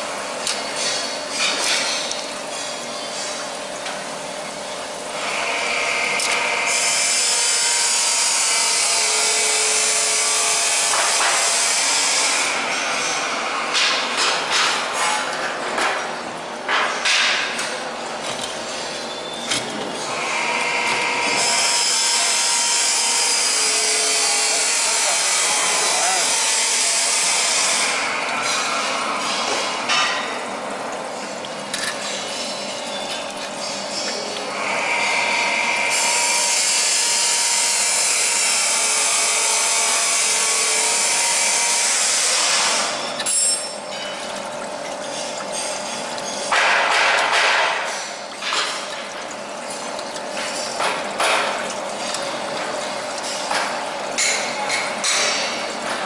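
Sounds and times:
machine hissing loudly: 20.1s - 28.2s.

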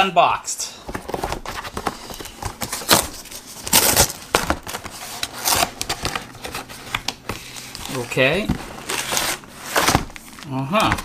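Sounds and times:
cardboard box tearing: 1.0s - 7.0s, 7.8s - 10.2s.

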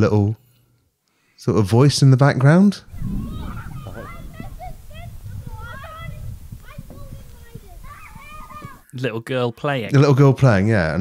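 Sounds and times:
girl calling out: 3.2s - 8.9s.

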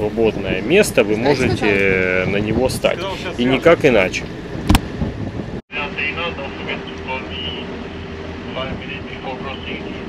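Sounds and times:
steady low hum: 4.3s - 10.0s.

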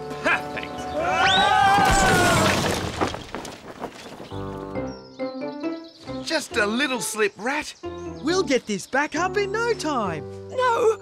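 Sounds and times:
cartoon ladder crash: 1.7s - 4.2s
pieces clattering: 1.8s - 4.4s.

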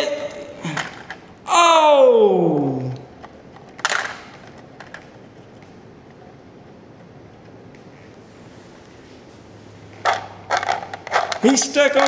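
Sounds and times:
plastic toy figures clicking: 10.1s - 12.0s.

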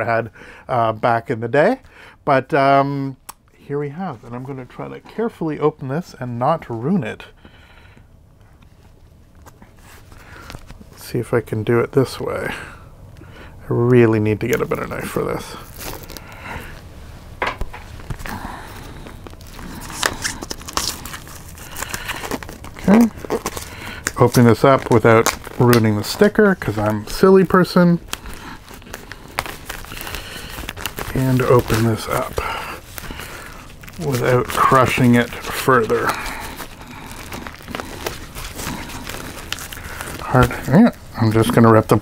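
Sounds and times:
plastic shrink-wrap crinkling: 13.8s - 42.0s.

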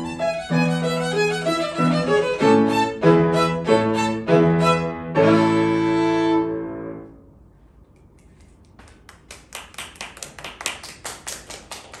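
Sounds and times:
audience applauding: 8.8s - 12.0s.

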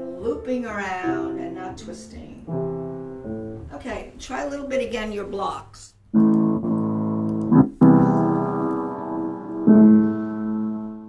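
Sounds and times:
piano chords: 0.0s - 5.4s, 6.0s - 11.0s.

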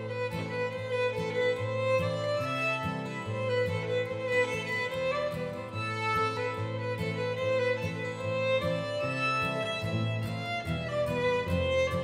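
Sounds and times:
cello and guitar accompaniment: 0.0s - 12.0s
violins bowing melody: 0.0s - 12.0s.

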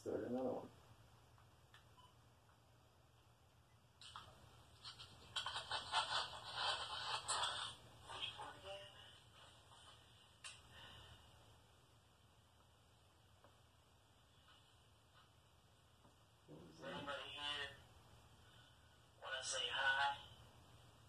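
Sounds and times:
muffled playback through small speaker: 0.0s - 21.0s.

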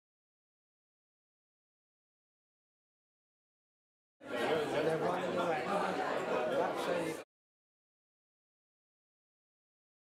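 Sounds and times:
chatter of many people: 4.2s - 7.3s.

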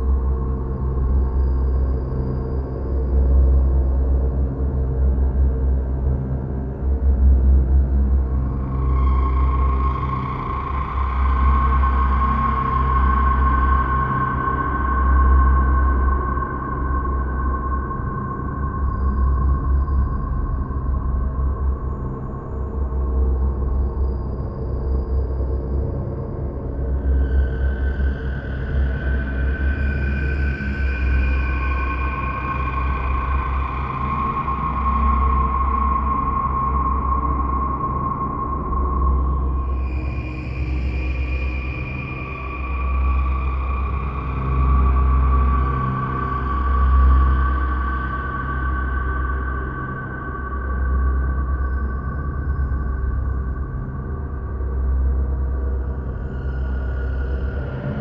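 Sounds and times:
low pulsing drone: 0.0s - 58.0s.

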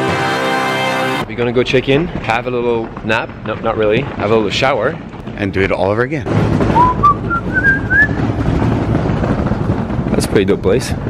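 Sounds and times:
wind buffeting microphone: 1.2s - 11.0s
rising whistle: 6.7s - 8.2s.

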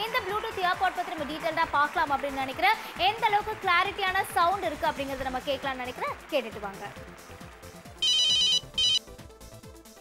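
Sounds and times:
phone ringtone: 8.0s - 9.0s.

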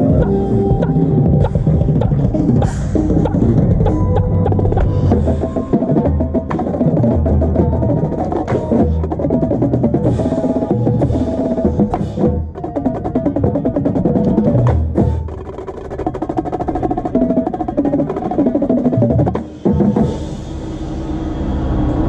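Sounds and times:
sustained pitched notes: 0.0s - 15.4s
marching tenor drums: 0.0s - 20.5s
marching percussion line: 0.0s - 21.2s.

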